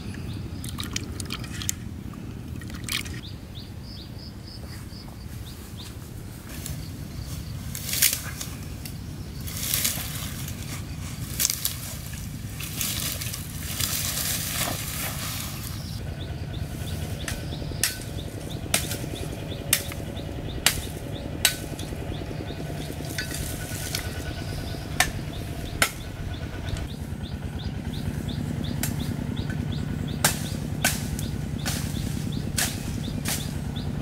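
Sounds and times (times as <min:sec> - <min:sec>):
twigs rustling: 0:04.7 - 0:34.0
dry branches snapping: 0:05.8 - 0:16.0, 0:16.8 - 0:27.0, 0:28.0 - 0:34.0.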